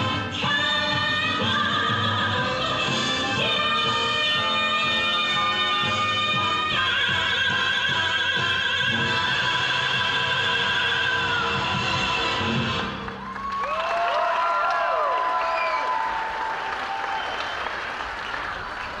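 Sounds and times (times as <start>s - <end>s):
audience applause: 12.9s - 19.0s
cheers and whistles: 13.1s - 18.9s.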